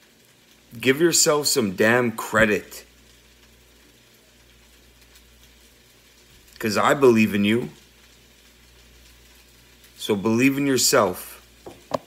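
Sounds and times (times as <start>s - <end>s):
light hiss: 0.0s - 12.0s.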